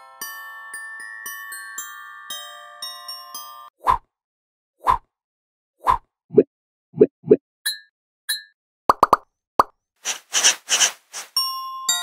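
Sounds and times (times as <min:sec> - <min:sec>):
cartoon plops: 0:08.9 - 0:09.7
hissing whooshes: 0:10.0 - 0:11.4.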